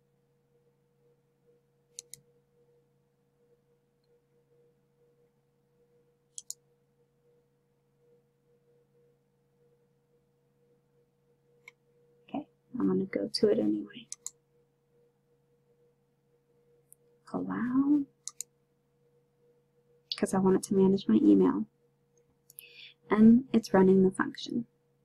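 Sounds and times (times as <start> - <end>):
faint steady hum: 0.0 - 25.0
computer mouse clicks: 1.9 - 2.3, 6.3 - 6.6, 14.1 - 14.4, 18.2 - 18.5.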